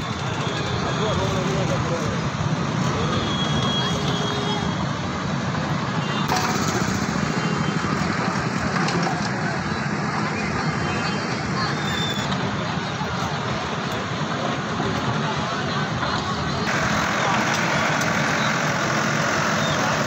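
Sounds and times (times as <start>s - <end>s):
crowd talking: 0.0s - 20.0s
diesel engine running: 6.3s - 10.7s, 12.4s - 20.0s.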